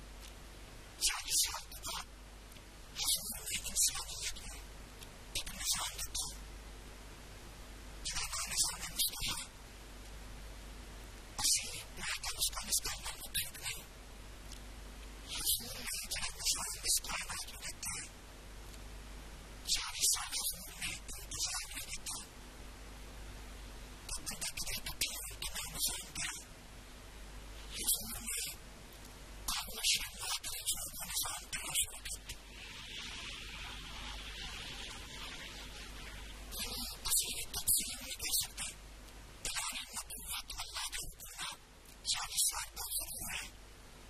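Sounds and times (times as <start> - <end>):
low electrical hum: 0.0 - 44.0.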